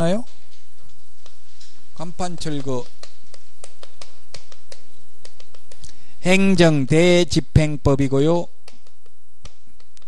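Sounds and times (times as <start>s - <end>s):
steady low hum: 0.0s - 10.0s
chalk tapping on a blackboard: 0.2s - 6.1s, 8.4s - 10.0s.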